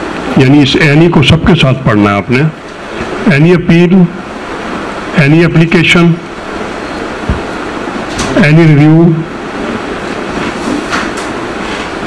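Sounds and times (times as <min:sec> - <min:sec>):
lecturer speaking: 0:00.3 - 0:04.4, 0:05.1 - 0:06.5, 0:08.0 - 0:09.7.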